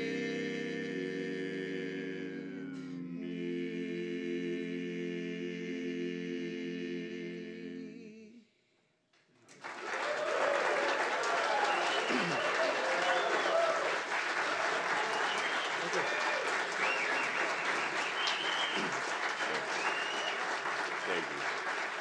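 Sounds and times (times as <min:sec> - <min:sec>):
audience applauding: 0:09.5 - 0:22.0
voices calling out and whooping: 0:10.1 - 0:14.0, 0:14.8 - 0:20.4.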